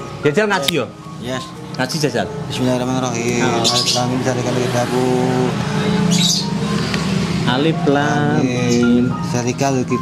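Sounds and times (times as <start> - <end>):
bird chirping: 3.2 - 4.7, 5.3 - 7.3.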